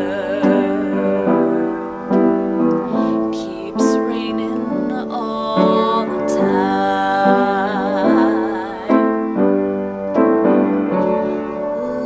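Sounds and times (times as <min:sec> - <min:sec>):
woman singing: 0:00.0 - 0:02.2, 0:02.8 - 0:09.3, 0:11.8 - 0:12.0
piano chords: 0:00.0 - 0:12.0.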